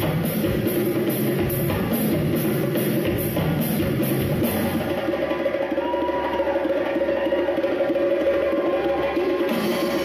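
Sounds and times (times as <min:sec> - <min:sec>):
fast drum roll: 0:00.0 - 0:10.0
percussion trio playing held notes: 0:00.0 - 0:10.0.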